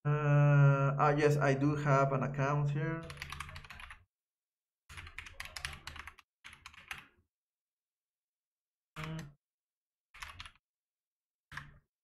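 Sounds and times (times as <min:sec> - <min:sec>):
typing on computer keyboard: 0:03.0 - 0:04.0, 0:04.9 - 0:07.2, 0:09.0 - 0:09.3, 0:10.2 - 0:10.6, 0:11.5 - 0:11.8.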